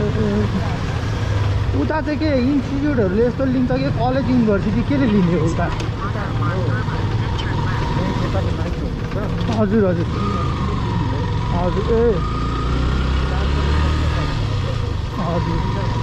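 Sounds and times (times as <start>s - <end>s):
motorcycle engine rumble: 0.0s - 16.0s.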